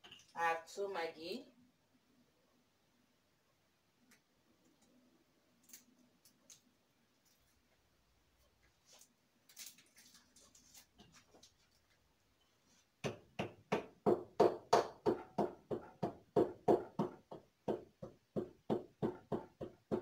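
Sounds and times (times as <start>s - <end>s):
wrapper rustling: 8.8s - 12.0s
wooden pestle pounding in mortar: 13.0s - 20.0s.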